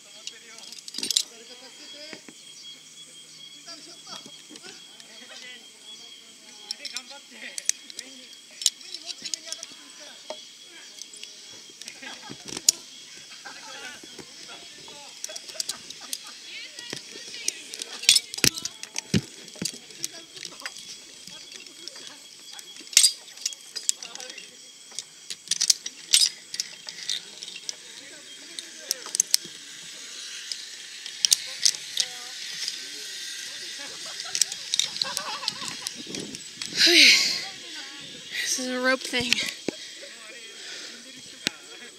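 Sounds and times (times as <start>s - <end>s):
metal carabiners clinking: 0.0s - 2.2s, 6.5s - 41.9s
high-pitched background hiss: 0.0s - 41.9s.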